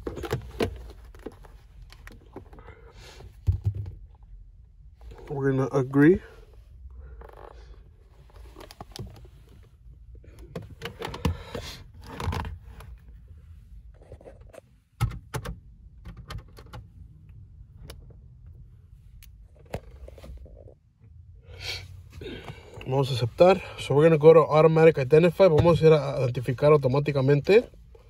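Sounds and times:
low steady hum: 0:00.0 - 0:28.0
handling clicks and scrapes: 0:07.1 - 0:13.2.

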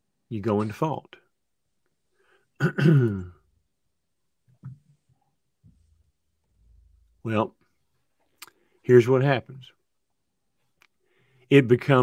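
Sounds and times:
man clearing his throat: 0:02.6 - 0:03.4.

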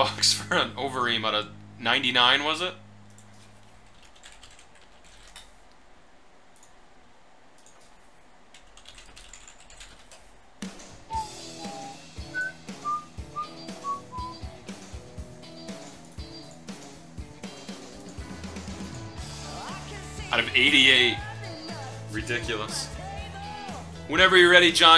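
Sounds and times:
computer keyboard clicking: 0:03.1 - 0:05.5, 0:08.5 - 0:10.3
background music with steady beat: 0:10.6 - 0:24.9.

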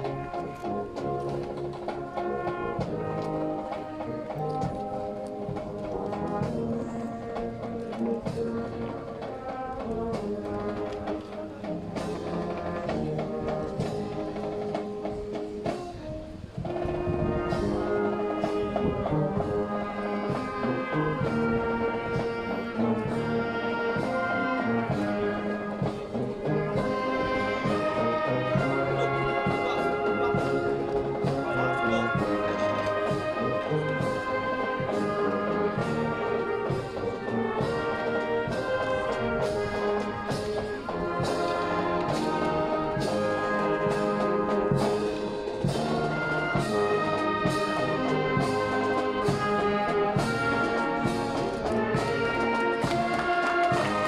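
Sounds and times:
brass band playing: 0:00.0 - 0:54.0
steady drum beat: 0:00.0 - 0:54.0.

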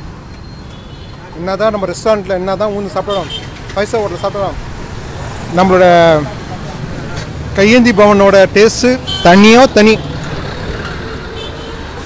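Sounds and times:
road traffic noise: 0:00.0 - 0:12.0
truck passing close: 0:03.5 - 0:12.0.

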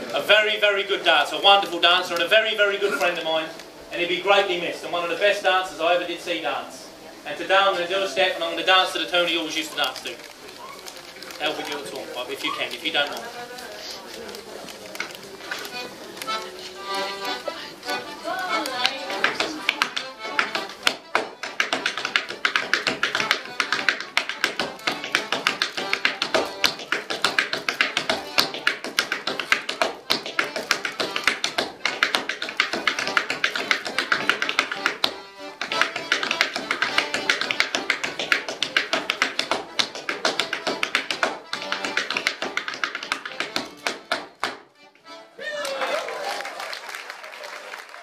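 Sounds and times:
lively accordion tune: 0:00.0 - 0:45.4
step dancing on wooden board: 0:14.8 - 0:45.1.

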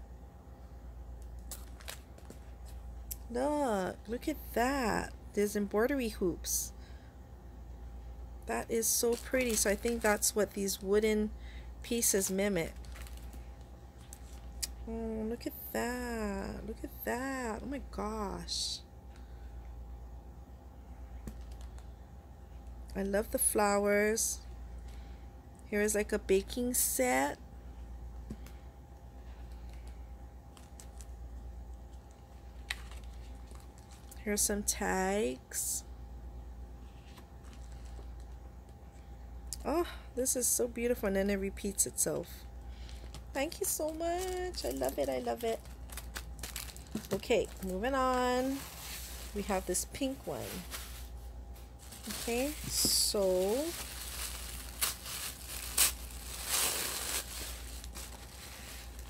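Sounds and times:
steady low hum: 0:00.0 - 0:59.0
paper pages rustling: 0:48.4 - 0:59.0.

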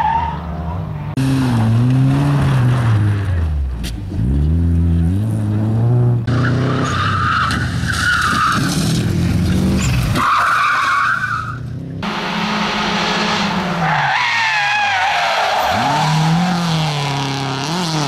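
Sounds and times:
rally car engines revving: 0:00.0 - 0:18.0
tyres screeching: 0:13.3 - 0:16.8.

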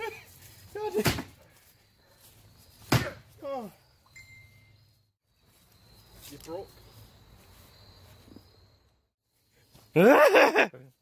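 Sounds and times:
crickets droning: 0:00.0 - 0:11.0
faint tone: 0:04.0 - 0:05.0.

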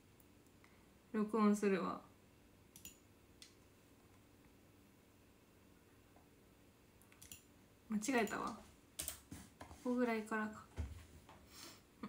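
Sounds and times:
woman speaking: 0:01.2 - 0:02.1, 0:07.9 - 0:08.7, 0:09.8 - 0:10.7
computer control clicks: 0:02.7 - 0:03.6, 0:07.0 - 0:07.5.

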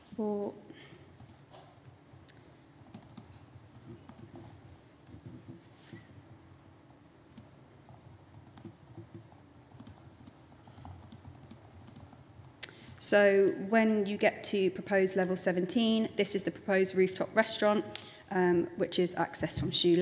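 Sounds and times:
low room hum: 0:00.0 - 0:20.0
keyboard keys clicking: 0:02.8 - 0:05.6, 0:07.3 - 0:12.6.

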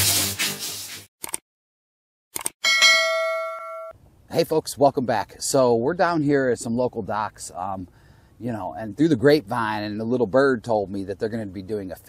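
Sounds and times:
notification bell ding: 0:02.6 - 0:04.0.

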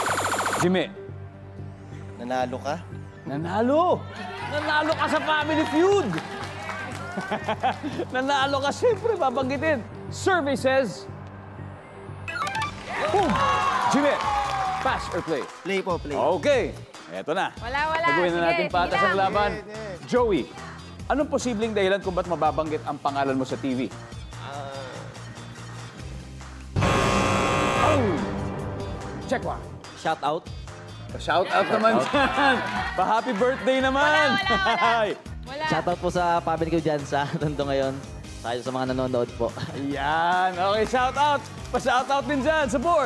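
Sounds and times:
background music: 0:00.0 - 0:43.0
game-show wrong-answer buzzer: 0:26.8 - 0:28.6.

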